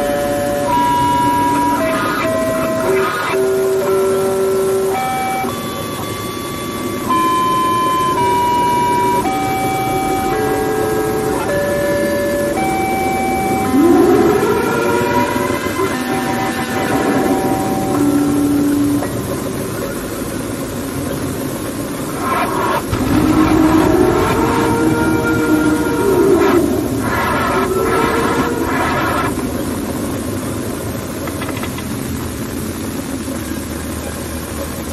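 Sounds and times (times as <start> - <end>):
siren-like electronic wails: 0.0 - 30.2
distorted electronic tune: 0.0 - 34.9
noisy hiss: 0.0 - 34.9.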